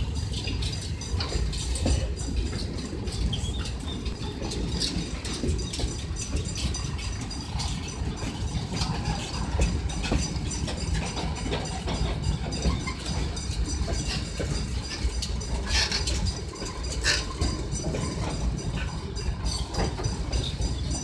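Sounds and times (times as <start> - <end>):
freight train rolling past: 0.0 - 21.0
wheels clicking on rail: 0.0 - 21.0.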